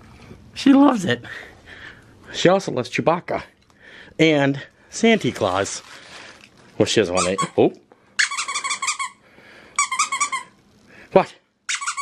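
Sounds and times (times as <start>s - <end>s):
squeaky dog toy squeaking: 7.1s - 9.2s, 9.8s - 10.6s, 11.7s - 12.0s.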